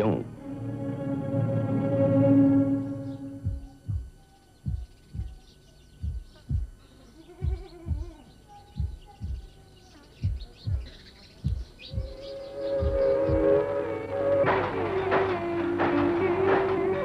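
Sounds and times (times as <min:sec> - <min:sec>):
steady held tone: 0:00.0 - 0:05.4, 0:11.5 - 0:17.0
low drum beats: 0:00.0 - 0:06.8, 0:07.4 - 0:09.6, 0:10.2 - 0:17.0
faint high chirps: 0:02.5 - 0:15.2.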